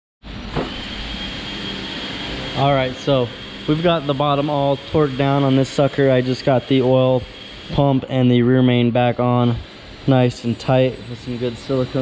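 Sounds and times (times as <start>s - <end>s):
high steady whine: 0.2s - 12.0s
machine running noise: 0.2s - 12.0s.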